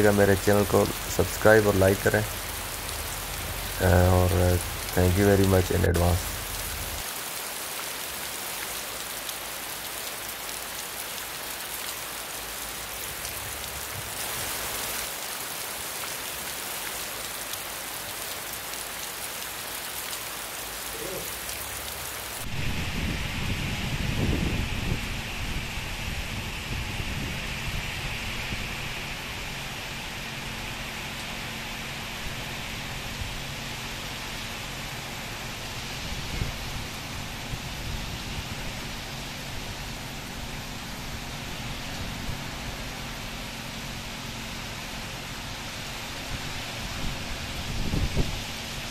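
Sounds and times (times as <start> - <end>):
heavy rain on wet pavement: 0.0 - 48.9.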